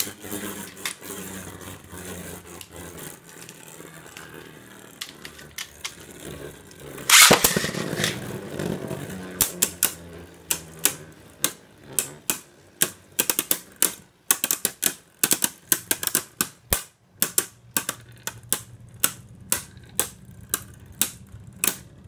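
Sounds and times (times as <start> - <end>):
spinning tops clacking together: 0.0 - 1.6, 7.0 - 8.3
spinning tops whirring: 0.0 - 22.0.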